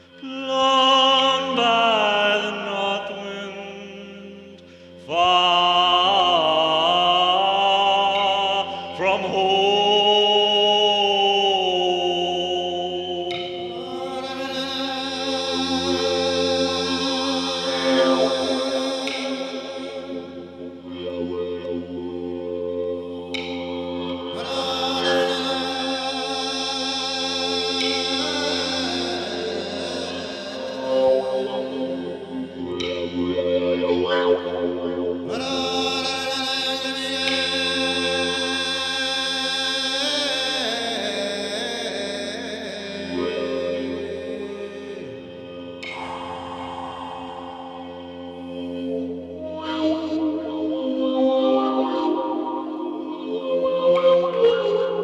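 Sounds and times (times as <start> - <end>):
person chanting: 0.0 - 55.0
mouthbow drone tones: 5.0 - 39.0, 39.8 - 55.0
mouthbow low drone with overtones: 44.2 - 50.9.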